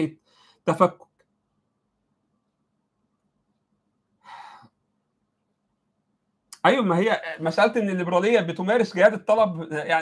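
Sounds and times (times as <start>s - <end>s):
man breathing: 0.2s - 0.7s, 4.2s - 4.9s.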